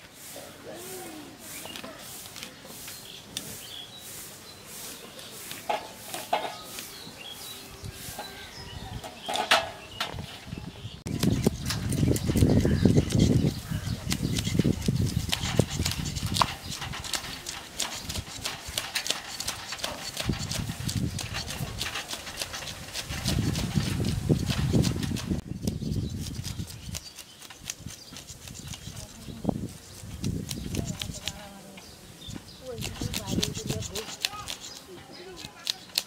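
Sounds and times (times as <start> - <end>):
fish scaler scraping scales: 11.2 - 29.3, 32.7 - 36.0.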